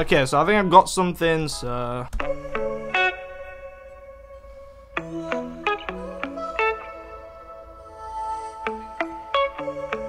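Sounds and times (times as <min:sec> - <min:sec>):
electric guitar plucked notes: 0:02.2 - 0:10.0.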